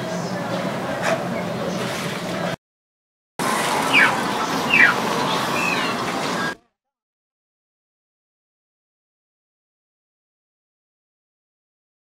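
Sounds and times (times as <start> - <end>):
small animal calls: 3.8 - 6.6.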